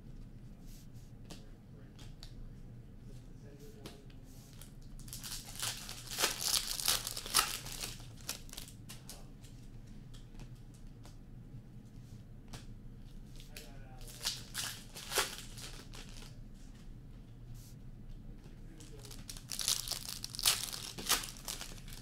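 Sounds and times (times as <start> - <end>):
card pack wrappers tearing and crinkling: 5.0 - 8.8, 13.5 - 16.3, 18.8 - 22.0.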